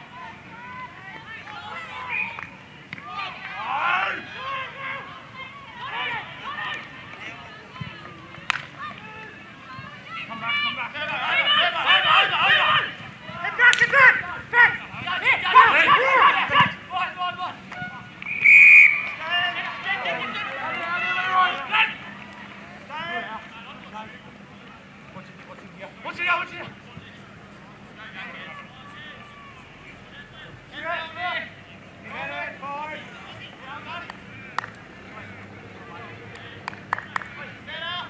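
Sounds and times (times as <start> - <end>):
players and spectators shouting: 0.0 - 25.0, 25.7 - 38.0
short high whistle blast: 18.3 - 19.1.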